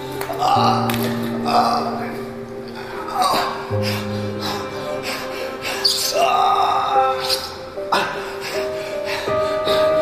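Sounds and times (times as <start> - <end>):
film music with low notes: 0.0 - 10.0.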